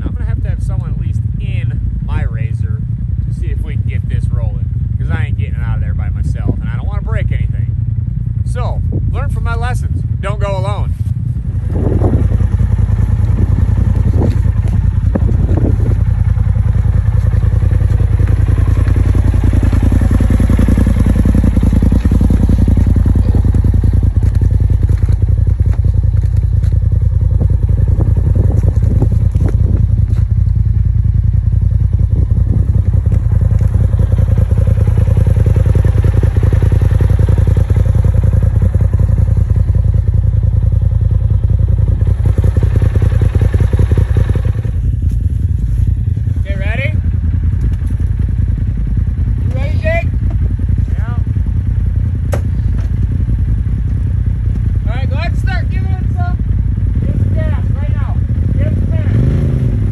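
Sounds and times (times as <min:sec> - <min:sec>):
vehicle engine idling: 0:00.0 - 0:59.9.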